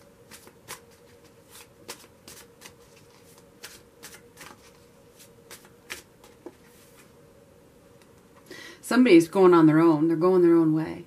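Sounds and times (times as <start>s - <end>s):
cards being shuffled: 0.3s - 7.1s.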